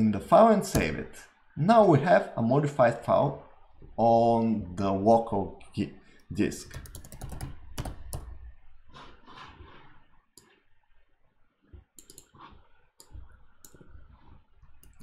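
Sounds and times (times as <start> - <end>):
computer keyboard keystrokes: 6.7 - 8.3, 12.0 - 12.4.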